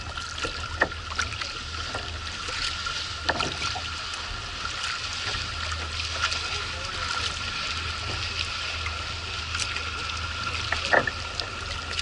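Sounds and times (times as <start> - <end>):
paddle dipping through water: 0.0 - 12.0
water washing along hull: 0.0 - 12.0.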